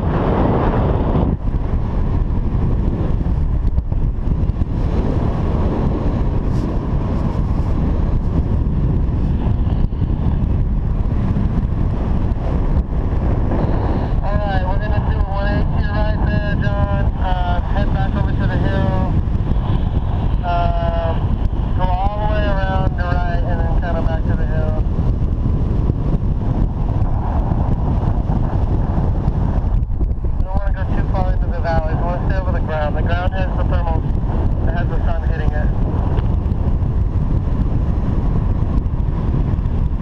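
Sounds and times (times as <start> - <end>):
wind rumbling on microphone: 0.0 - 40.0.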